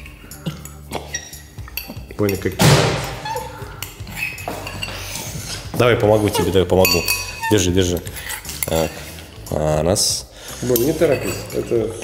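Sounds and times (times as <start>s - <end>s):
metal spoon clinking in mug: 0.6s - 2.5s, 3.3s - 5.0s, 6.7s - 8.7s, 10.7s - 12.0s.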